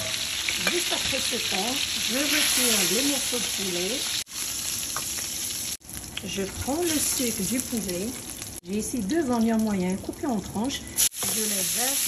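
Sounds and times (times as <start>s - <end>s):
chicken sizzling in a frying pan: 0.0s - 10.4s, 11.0s - 12.0s.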